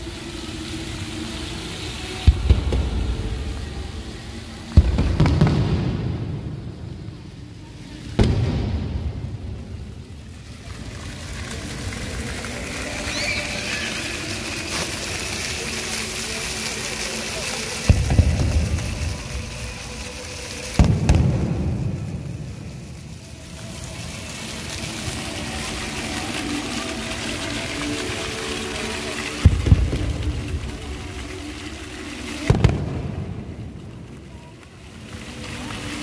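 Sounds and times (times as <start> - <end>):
fountain jets splashing: 0.0 - 36.0
deep booms: 8.2 - 9.7.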